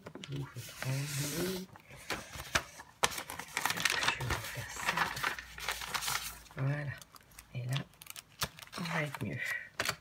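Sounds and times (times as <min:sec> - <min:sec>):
plastic sheets crinkling: 0:00.0 - 0:10.0.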